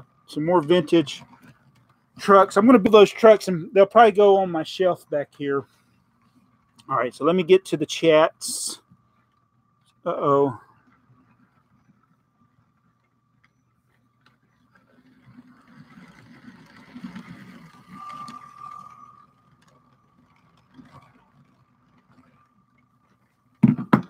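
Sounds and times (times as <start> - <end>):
toy train wheel clatter: 14.6 - 23.7
toy train motor whine: 14.8 - 22.6.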